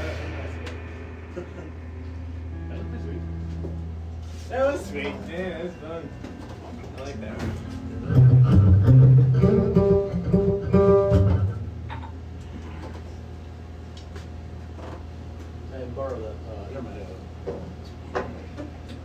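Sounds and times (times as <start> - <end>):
low plucked string notes: 0.0 - 12.1
steady low hum: 0.0 - 19.0.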